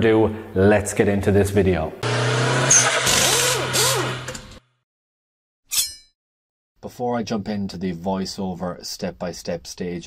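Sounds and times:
car engine revving: 2.0s - 4.6s.

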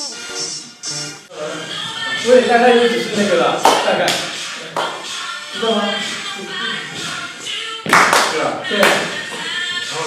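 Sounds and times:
pop song with singing: 0.0s - 10.0s
sharp hand claps: 3.6s - 5.0s, 7.9s - 9.0s.

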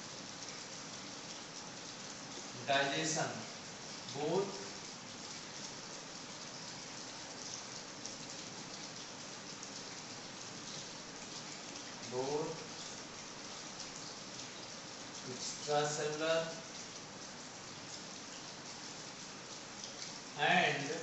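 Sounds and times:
background hiss: 0.0s - 21.0s.

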